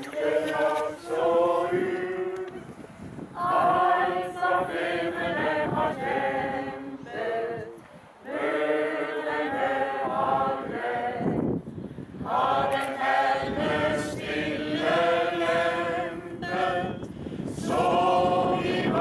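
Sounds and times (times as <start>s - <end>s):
choir singing: 0.0s - 11.6s, 12.2s - 19.0s.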